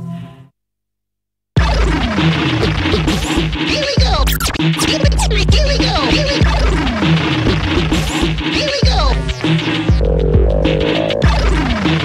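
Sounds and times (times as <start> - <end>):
heavy bass drums: 1.6 - 12.0
turntable scratching: 1.6 - 12.0.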